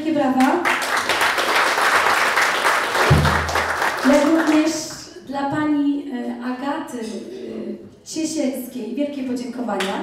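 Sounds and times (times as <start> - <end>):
audience applauding: 0.6 - 4.8.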